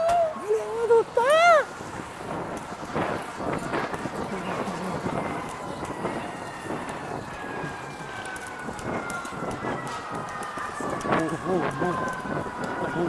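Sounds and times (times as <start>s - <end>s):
emergency vehicle siren: 0.0s - 13.0s
street noise: 0.0s - 13.0s.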